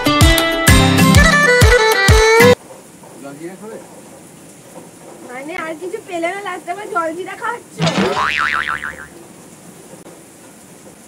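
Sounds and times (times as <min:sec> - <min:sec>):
cartoon boing sound effect: 0:07.8 - 0:09.1.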